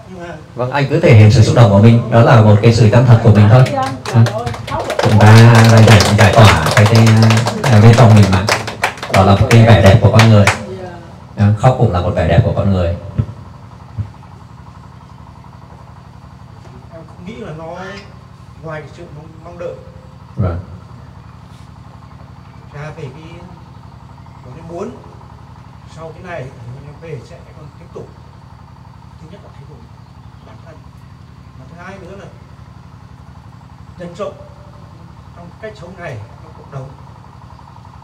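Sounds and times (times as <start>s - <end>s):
steady low hum: 0.0s - 38.0s.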